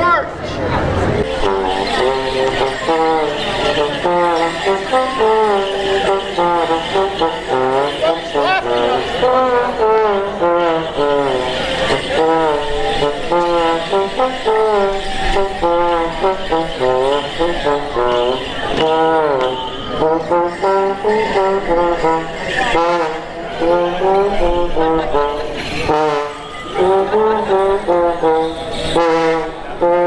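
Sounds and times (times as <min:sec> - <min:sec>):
lively instrumental dance tune: 0:00.0 - 0:30.0.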